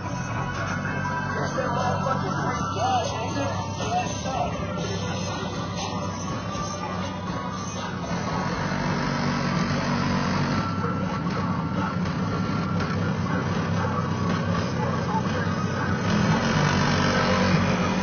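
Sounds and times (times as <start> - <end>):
car engine running: 0.0 - 18.0
music from car stereo: 0.0 - 18.0.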